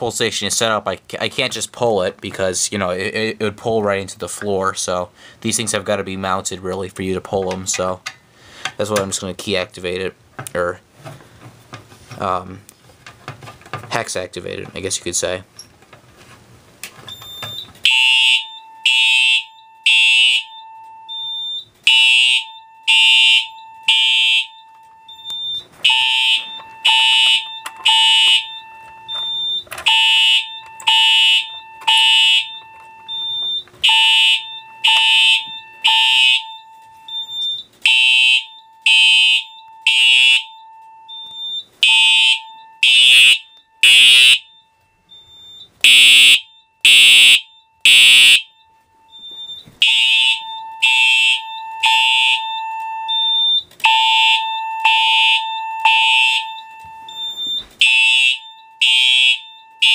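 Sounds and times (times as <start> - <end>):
fire alarm horn blasts: 17.8 - 59.9.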